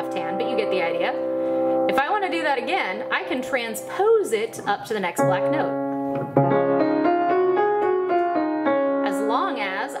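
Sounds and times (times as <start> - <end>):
upright piano playing a scale: 0.0 - 10.0.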